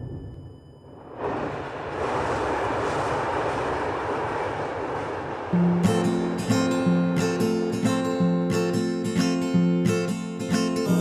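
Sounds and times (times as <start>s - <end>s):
passenger train travel noise: 0.0s - 9.2s
strummed acoustic guitar: 5.6s - 11.0s.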